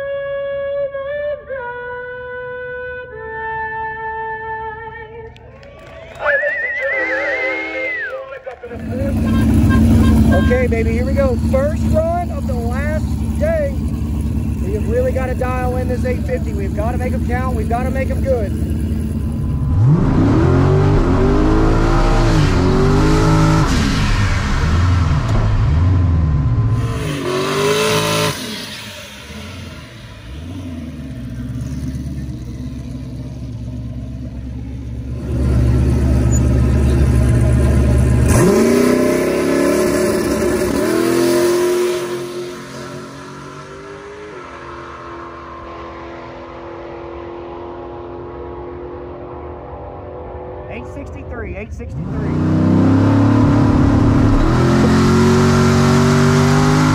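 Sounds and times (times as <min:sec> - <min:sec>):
tyre burnout: 0:05.7 - 0:56.9
race car engine revving: 0:08.0 - 0:56.9.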